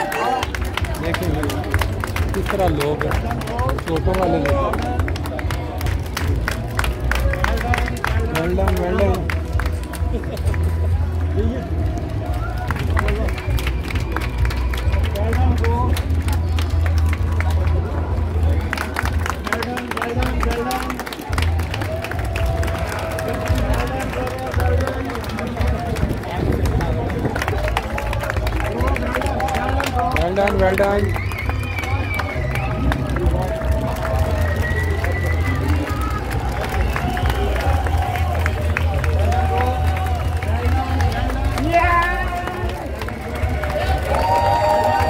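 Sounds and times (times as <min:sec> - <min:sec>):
music playing: 0:00.0 - 0:45.0
spectators clapping: 0:00.0 - 0:45.0.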